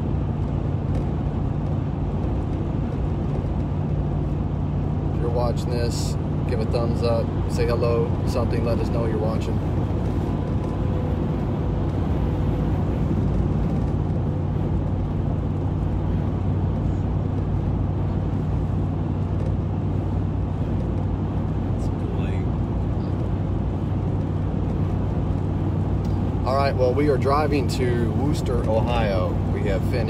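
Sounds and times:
low engine hum: 0.0s - 30.0s
road noise: 0.0s - 30.0s.

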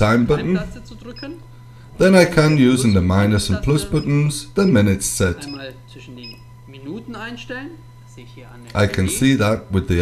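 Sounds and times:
man speaking quietly: 8.1s - 10.0s.

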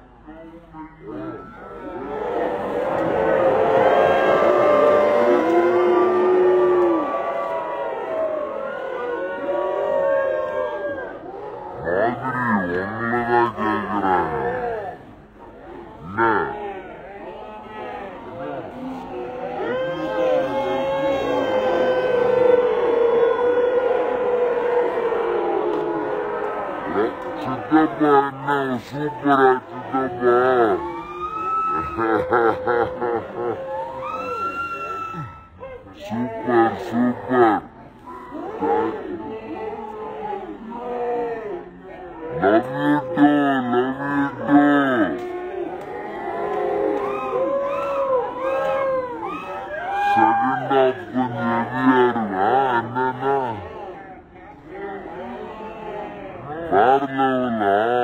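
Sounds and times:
audience shouting together: 1.7s - 11.8s.

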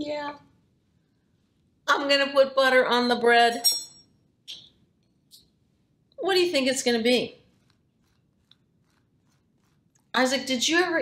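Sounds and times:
knife scraping butter on bread: 7.4s - 10.6s.

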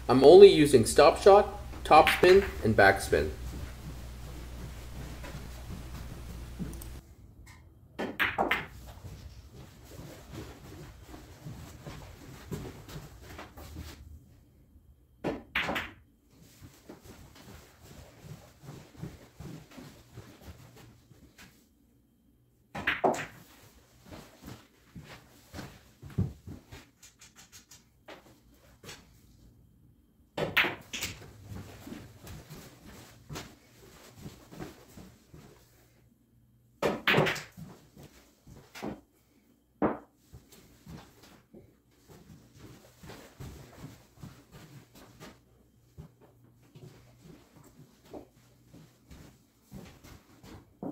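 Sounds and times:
pool balls clacking: 0.1s - 7.0s, 8.0s - 8.9s, 22.8s - 23.6s, 36.8s - 37.6s
faint clicks and knocks: 3.5s - 7.7s.

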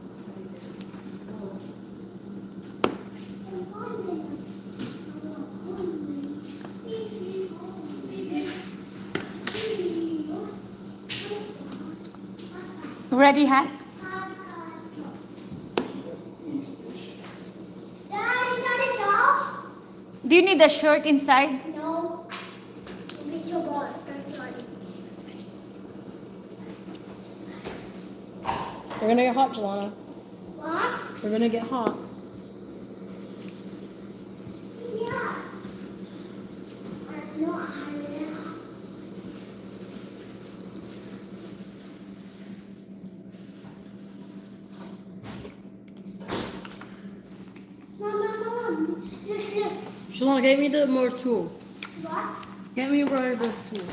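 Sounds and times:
steady low hum: 0.0s - 53.9s
child's wordless voice sound: 3.4s - 8.8s, 9.6s - 13.1s, 13.9s - 15.3s, 18.1s - 19.8s, 23.2s - 25.0s, 30.6s - 32.0s, 34.8s - 35.7s, 37.0s - 38.7s, 48.0s - 53.1s.

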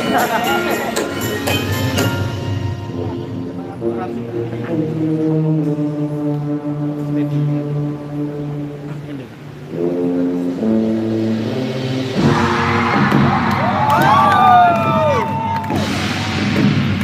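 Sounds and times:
brass band holding loud chords: 0.0s - 13.0s
crowd cheering: 12.2s - 16.7s.

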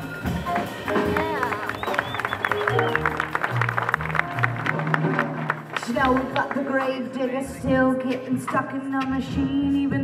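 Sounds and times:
upright bass: 0.0s - 8.0s
drums and cymbals: 0.0s - 10.0s
flute line: 0.9s - 3.7s.

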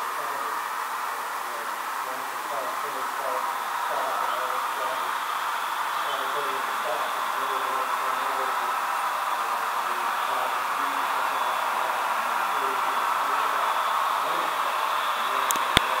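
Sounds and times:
model locomotives hissing on track: 0.0s - 16.0s.

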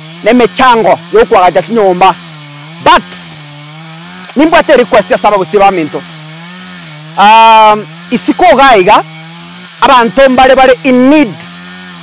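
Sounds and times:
distant chainsaw running: 0.0s - 12.0s.

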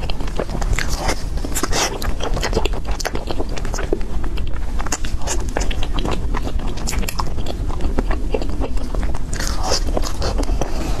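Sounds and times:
chewing and biting food: 0.0s - 11.0s
mouth clicks and smacks: 0.0s - 11.0s.

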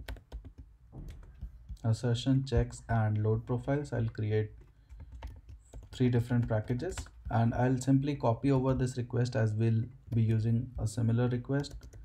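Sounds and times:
computer keyboard typing: 0.0s - 1.8s, 4.0s - 7.6s, 11.4s - 12.0s.

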